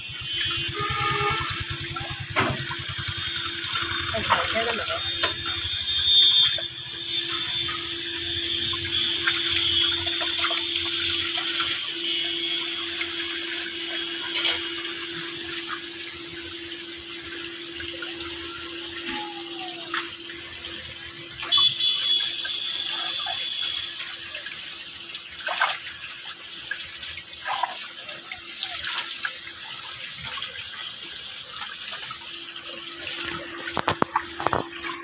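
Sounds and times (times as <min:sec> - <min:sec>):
hose water gushing into basin: 0:00.0 - 0:35.0
water splashes: 0:00.0 - 0:35.0.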